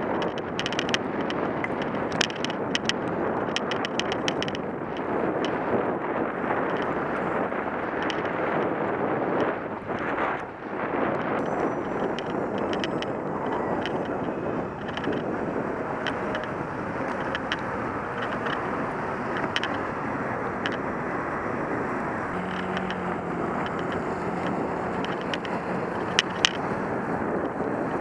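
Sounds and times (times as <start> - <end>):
light clicks and rattles: 0.0 - 5.7, 6.5 - 10.5, 11.2 - 28.0
cars passing: 0.0 - 28.0
road and wind noise: 0.0 - 28.0.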